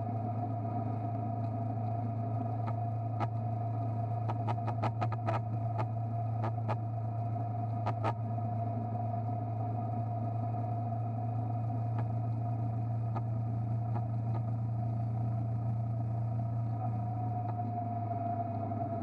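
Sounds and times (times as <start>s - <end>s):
faint ticks: 1.2s - 8.3s, 11.4s - 17.8s.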